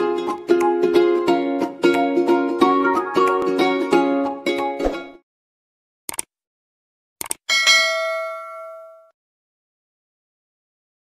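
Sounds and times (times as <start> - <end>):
notification bell ding: 7.5 - 9.1.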